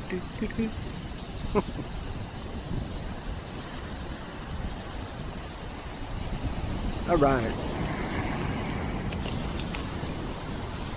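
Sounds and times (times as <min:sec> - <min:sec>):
wind rumbling on microphone: 0:00.0 - 0:10.9
camera handling clicks: 0:09.1 - 0:09.9.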